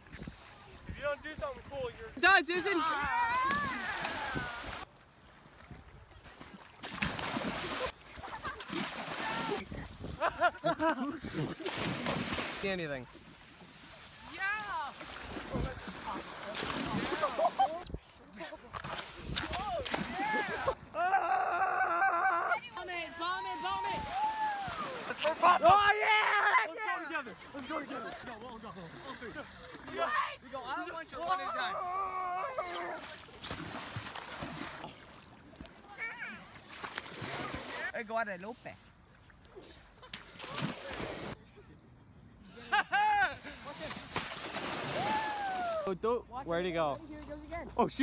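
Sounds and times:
young people whooping: 0:02.9 - 0:04.8, 0:19.6 - 0:22.6, 0:23.3 - 0:25.2, 0:44.9 - 0:45.9
splash in shallow water: 0:03.0 - 0:10.2, 0:11.2 - 0:17.8, 0:18.4 - 0:20.8, 0:23.2 - 0:25.9, 0:32.6 - 0:38.0, 0:40.0 - 0:41.4, 0:43.4 - 0:45.9
people laughing: 0:07.8 - 0:11.8, 0:16.9 - 0:18.7, 0:20.0 - 0:22.6, 0:24.7 - 0:26.8, 0:39.8 - 0:43.9.

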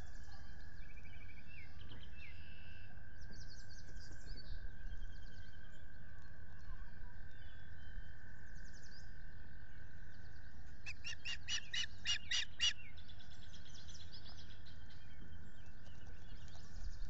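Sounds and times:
faint bird chirps: 0:00.0 - 0:17.0
osprey calling: 0:10.9 - 0:12.8.

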